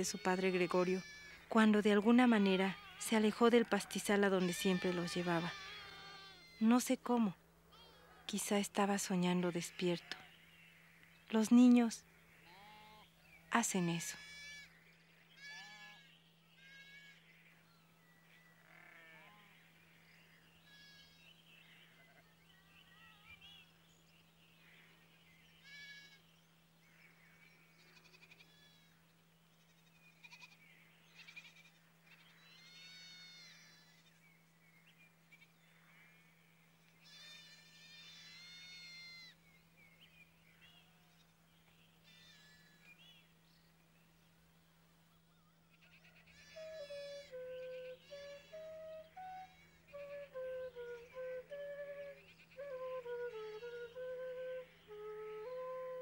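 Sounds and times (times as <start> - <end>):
flock bleating: 2.4 - 6.7, 14.0 - 14.7, 15.4 - 16.0, 31.2 - 34.1, 37.0 - 39.3.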